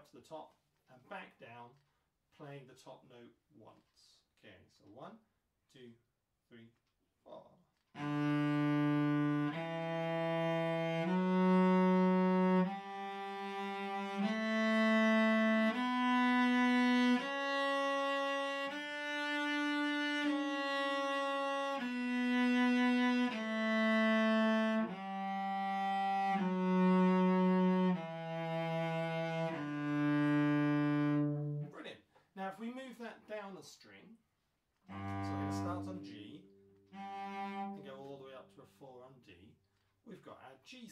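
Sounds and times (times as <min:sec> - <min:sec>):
cello playing a scale: 0:08.0 - 0:31.8, 0:34.9 - 0:38.4.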